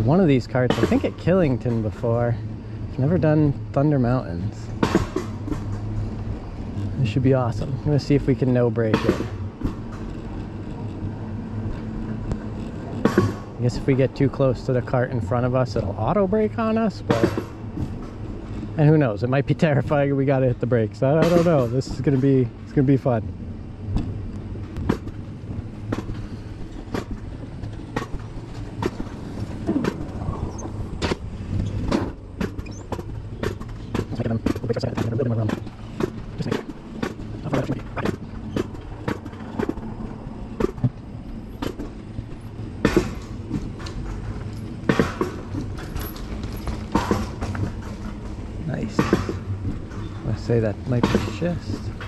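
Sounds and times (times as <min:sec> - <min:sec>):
coaster cart rumbling on rail: 0:00.0 - 0:52.0
sharp clacks on track: 0:00.0 - 0:52.0.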